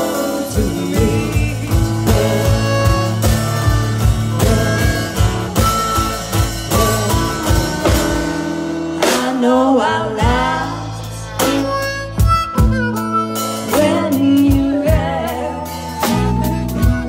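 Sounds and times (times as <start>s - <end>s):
harmonica with bent notes: 0.0s - 9.3s, 10.2s - 17.0s
drums: 0.0s - 17.0s
guitar: 0.0s - 17.0s
person singing: 0.0s - 17.0s
upright bass: 0.0s - 17.0s.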